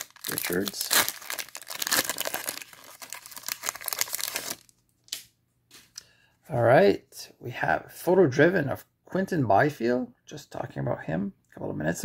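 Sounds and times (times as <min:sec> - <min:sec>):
foil wrapper crinkling and tearing: 0:00.0 - 0:05.2.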